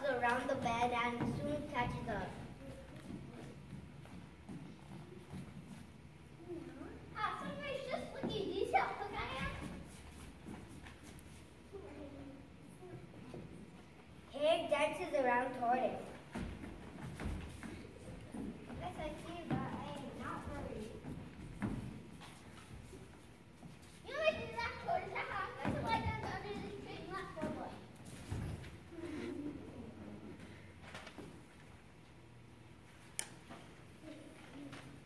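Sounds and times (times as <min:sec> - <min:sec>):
child speaking: 0:00.0 - 0:03.5, 0:06.4 - 0:09.8, 0:14.3 - 0:16.1, 0:18.7 - 0:21.0, 0:24.1 - 0:27.9
children calling out and talking: 0:06.4 - 0:09.8, 0:24.0 - 0:27.9.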